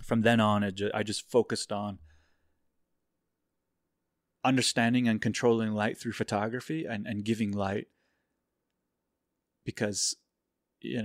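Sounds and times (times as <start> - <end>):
faint out-breath: 2.0 - 2.6, 7.9 - 8.5.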